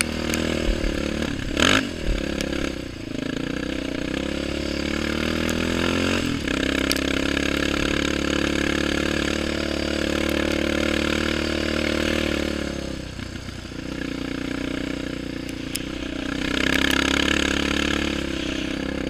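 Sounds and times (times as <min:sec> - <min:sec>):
quad engine under throttle: 0:00.0 - 0:19.0.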